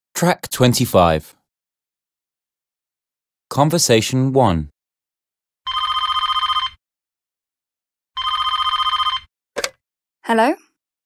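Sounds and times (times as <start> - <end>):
telephone ringing: 5.7 - 6.8, 8.2 - 9.7.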